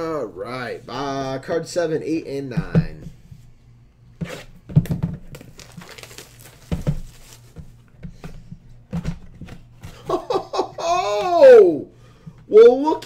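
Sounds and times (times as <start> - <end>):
cardboard box rustles and knocks: 4.7 - 8.3
plastic wrap crinkling: 4.8 - 7.8.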